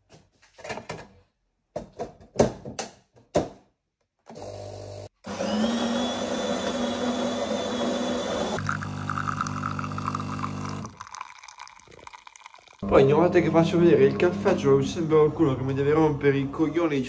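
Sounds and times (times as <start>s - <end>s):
espresso machine motor whir: 4.3s - 11.2s
espresso machine pump buzz: 4.3s - 11.2s
coffee trickling into cup: 8.4s - 12.8s.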